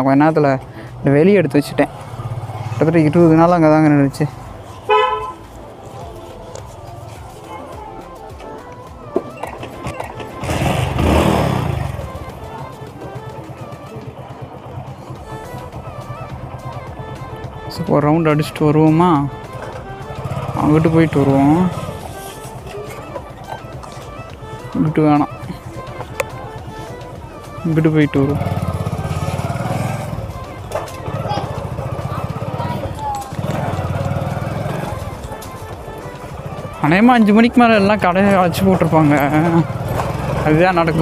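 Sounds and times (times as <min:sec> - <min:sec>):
background music: 0:00.0 - 0:41.0
motorcycle engine starting and idling: 0:09.2 - 0:41.0.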